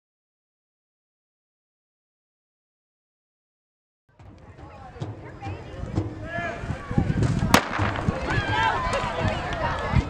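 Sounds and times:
spectators chattering and calling: 4.1 - 10.0
starter's pistol crack: 7.6 - 8.0.

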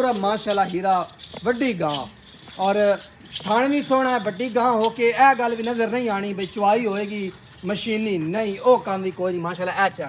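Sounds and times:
person's voice: 0.0 - 10.0
small bells jingling: 0.0 - 10.0.

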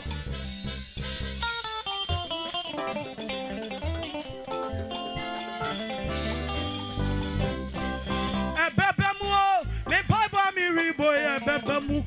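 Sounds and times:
bass: 0.0 - 12.0
horn section playing melody: 5.1 - 9.6.

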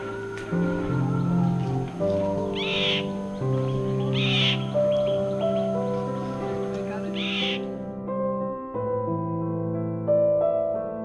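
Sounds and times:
bird giving harsh calls: 2.5 - 6.2, 7.0 - 7.8.

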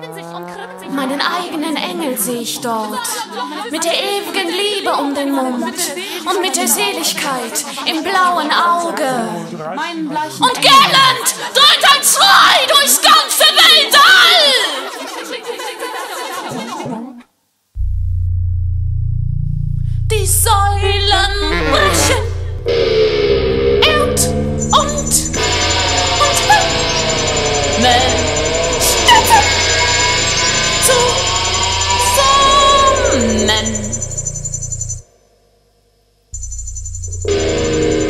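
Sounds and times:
loud low steady drone: 17.8 - 35.0, 36.4 - 38.0
held chord of steady tones: 19.4 - 35.0, 36.4 - 38.0.

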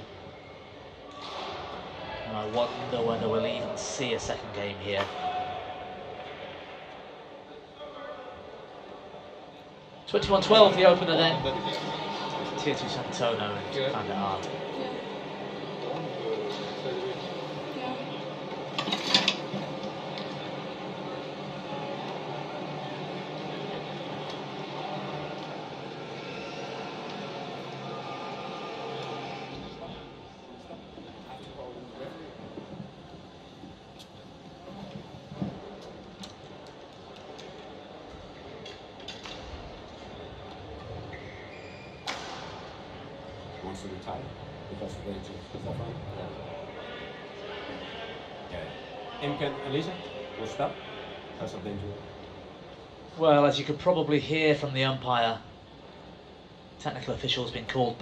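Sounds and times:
indistinct talking: 0.0 - 40.9
sports hall hum: 0.0 - 58.0.

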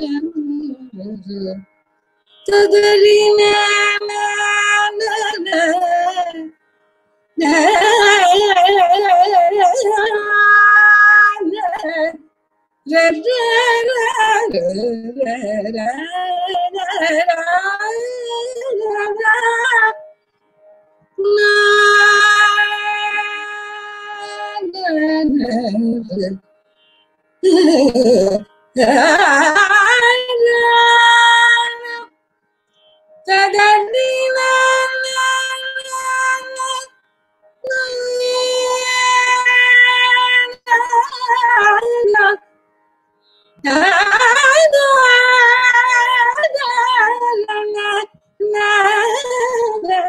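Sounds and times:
woman singing unaccompanied: 0.0 - 1.6, 2.4 - 6.6, 7.4 - 12.2, 12.9 - 20.0, 21.2 - 26.4, 27.4 - 32.1, 33.2 - 36.9, 37.6 - 42.4, 43.6 - 50.0.

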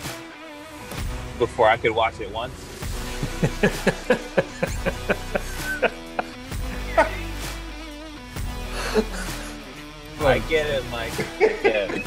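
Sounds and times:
men laughing hard: 3.1 - 7.4, 8.7 - 9.9, 11.1 - 12.0.

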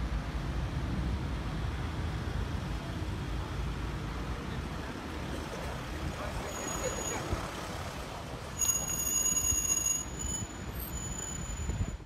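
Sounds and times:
traffic: 0.0 - 12.0.

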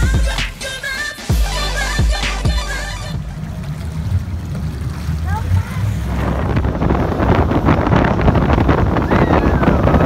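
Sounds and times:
boat engine: 0.0 - 10.0
water noise: 0.0 - 10.0
wind rushing over microphone: 3.2 - 10.0.

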